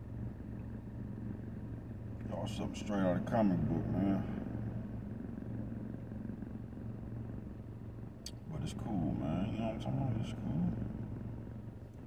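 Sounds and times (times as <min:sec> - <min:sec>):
car engine hum from inside cabin: 0:00.0 - 0:12.0.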